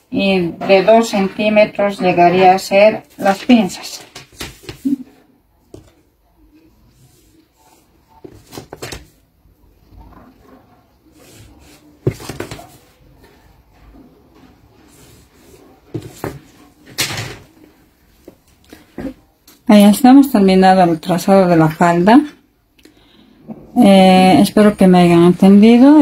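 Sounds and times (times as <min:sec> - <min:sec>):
paper rustling: 0:03.2 - 0:05.0.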